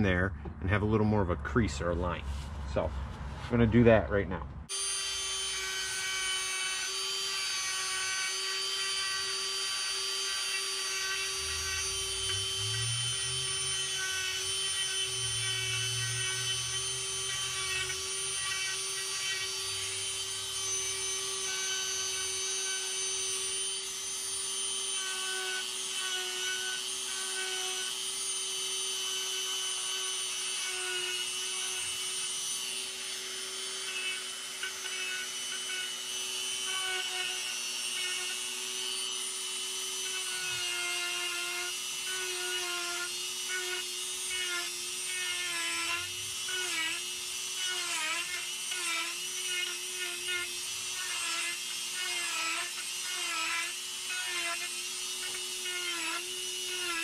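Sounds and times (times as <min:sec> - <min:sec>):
rotary tool grinding wood: 0:04.7 - 0:57.0.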